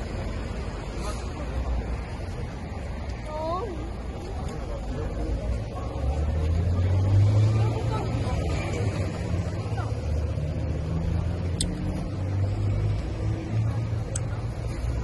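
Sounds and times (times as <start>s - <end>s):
traffic engine hum: 0.0s - 15.0s.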